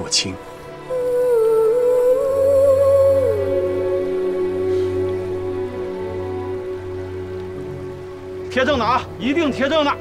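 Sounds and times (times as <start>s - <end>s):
slow melody with long note: 0.4s - 10.0s.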